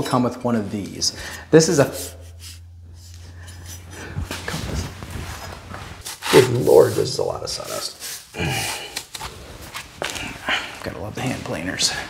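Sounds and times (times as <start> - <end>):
low steady hum: 0.0 - 11.1
brush sweeping sawdust on concrete: 0.7 - 8.3.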